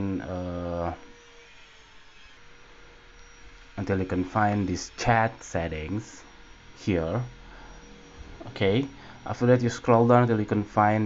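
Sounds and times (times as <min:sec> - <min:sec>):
faint hum: 0:00.0 - 0:11.0
thin steady tone: 0:02.5 - 0:11.0.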